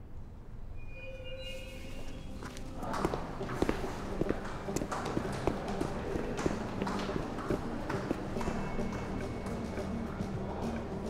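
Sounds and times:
soft sustained music tones: 0.0 - 11.0
dress shoes walking on tiled floor: 1.6 - 11.0.

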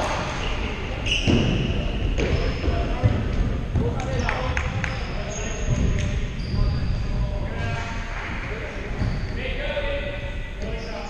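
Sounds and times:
sneakers squeaking on court: 1.0 - 3.1, 4.0 - 7.3, 8.9 - 9.4.

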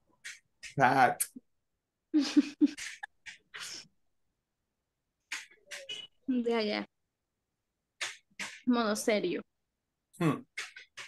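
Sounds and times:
person laughing: 2.1 - 2.9.

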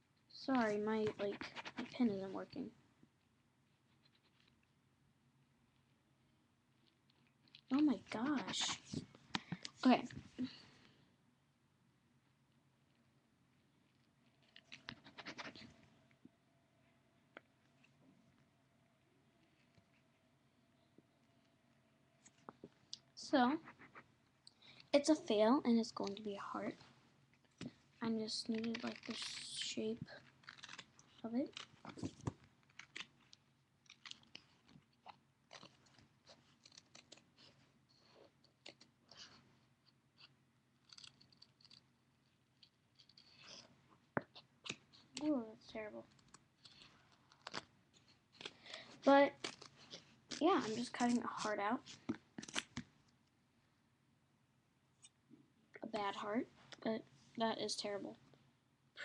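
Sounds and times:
pen scratching on duct tape: 1.0 - 2.1, 30.2 - 31.8, 35.5 - 37.6
scissors cutting tape: 30.4 - 31.7.

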